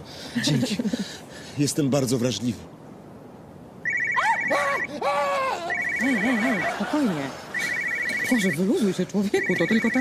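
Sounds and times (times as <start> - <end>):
phone ringtone trill: 3.8 - 4.9, 5.6 - 6.8, 7.5 - 8.6, 9.4 - 10.0
man crying out in fright: 4.2 - 5.9.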